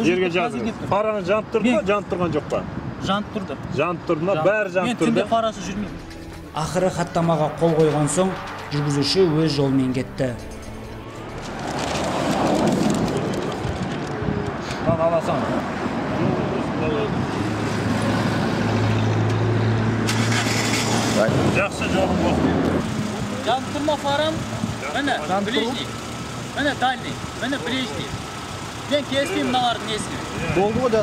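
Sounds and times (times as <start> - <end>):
cars passing: 0.0 - 31.0.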